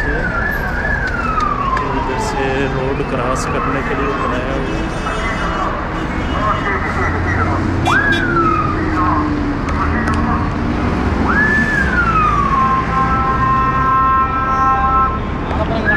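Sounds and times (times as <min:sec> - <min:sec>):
siren wailing: 0:00.0 - 0:04.4, 0:06.6 - 0:15.9
low rumble of engines: 0:00.0 - 0:15.9.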